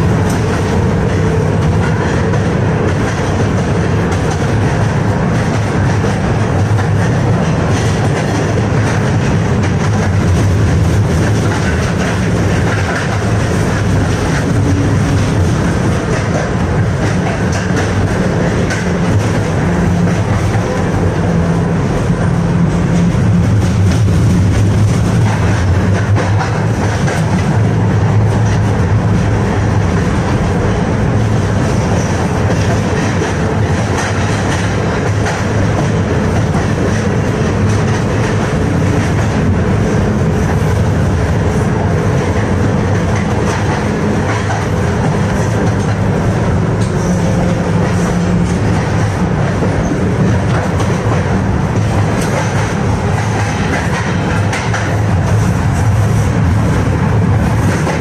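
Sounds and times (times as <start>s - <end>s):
tram wheels rolling on rails: 0.0s - 58.0s.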